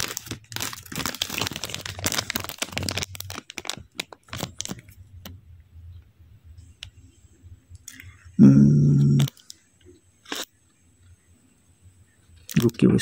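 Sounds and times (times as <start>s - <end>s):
foil wrapper crinkling: 0.0s - 5.3s.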